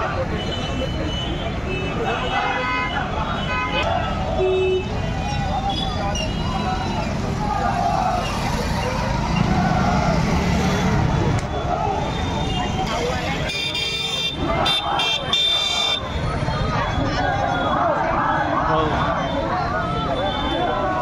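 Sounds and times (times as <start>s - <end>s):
crowd talking: 0.0s - 21.0s.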